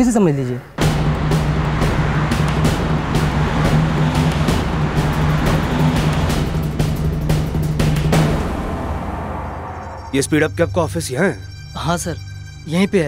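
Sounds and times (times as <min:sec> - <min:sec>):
dense rushing layer: 0:00.8 - 0:10.2
rapid percussive hits: 0:00.8 - 0:10.2
low drone: 0:00.8 - 0:12.6.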